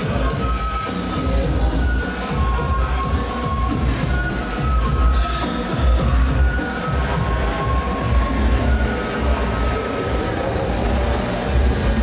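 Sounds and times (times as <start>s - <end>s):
electronic dance music with heavy bass: 0.0s - 12.0s.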